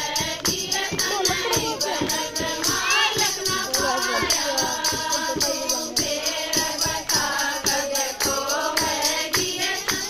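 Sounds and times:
women singing in unison: 0.0s - 10.0s
hand-clapping: 0.2s - 5.5s, 6.8s - 10.0s.

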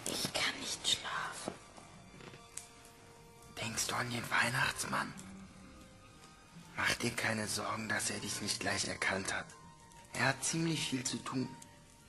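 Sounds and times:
person whispering: 0.0s - 1.6s.

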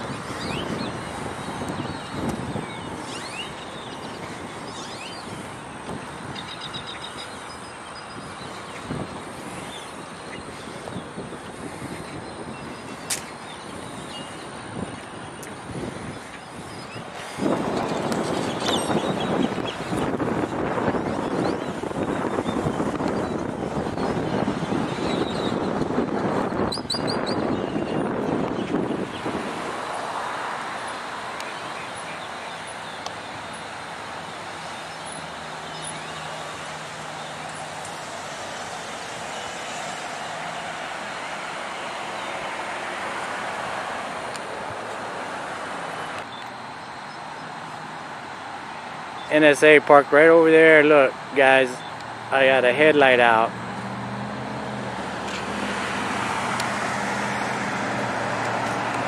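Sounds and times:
traffic noise: 0.0s - 59.0s.

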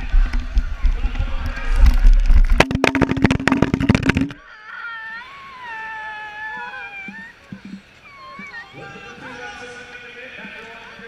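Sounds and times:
bike crashing and scraping on dirt: 0.0s - 4.4s.

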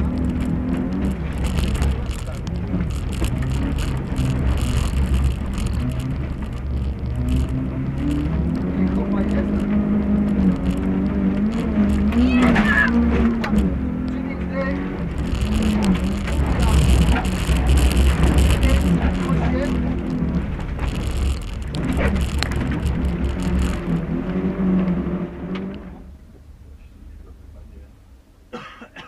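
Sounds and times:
gravel hissing under car: 0.0s - 25.8s
rally car engine revving: 0.0s - 26.2s.

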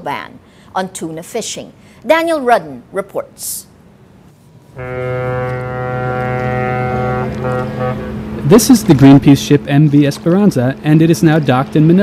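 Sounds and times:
ship's horn long blast: 4.8s - 8.6s.

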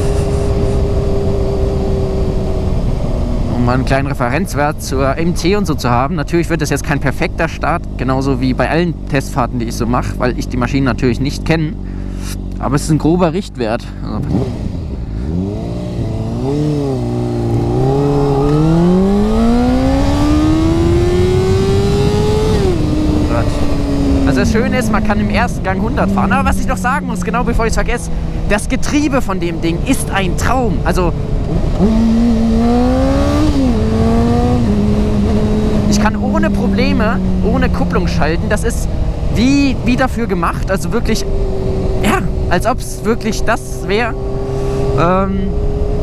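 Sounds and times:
wind rumble on microphone: 0.0s - 6.2s, 14.1s - 42.8s
motorcycle engine running: 0.0s - 46.0s.

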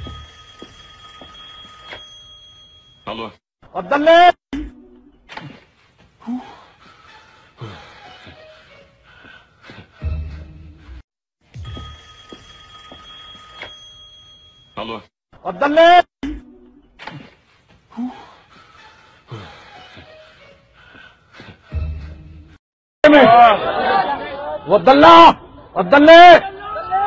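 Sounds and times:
mobile phone ringtone: 0.0s - 3.1s, 11.6s - 14.8s.

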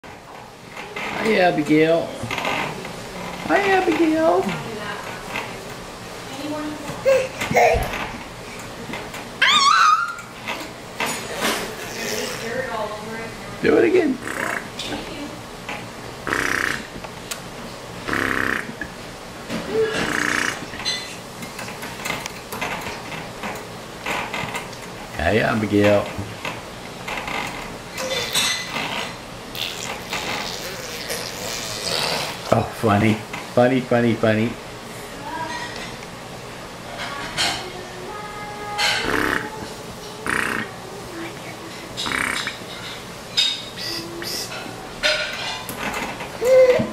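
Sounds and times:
baby squealing: 9.4s - 10.3s, 29.6s - 32.3s, 46.4s - 46.9s.

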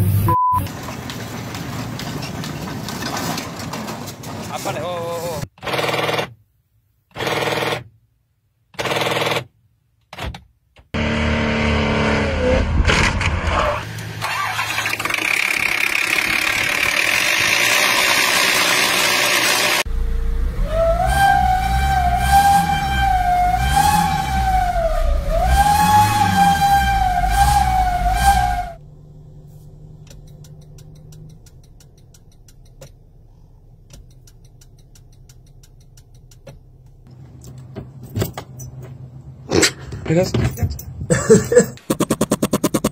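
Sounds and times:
engine running with damaged belt: 11.0s - 20.9s
loud wavering high squeal: 20.5s - 28.8s.

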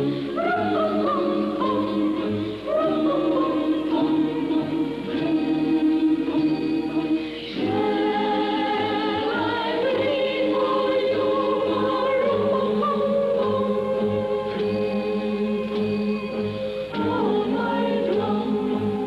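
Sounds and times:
choir singing sustained chords: 0.0s - 19.0s.

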